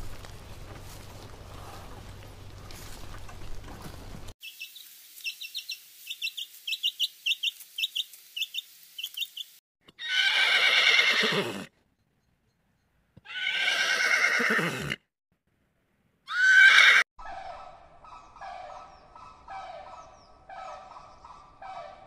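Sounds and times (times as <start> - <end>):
horses neighing: 10.0 - 11.7, 13.2 - 15.0, 16.3 - 17.0.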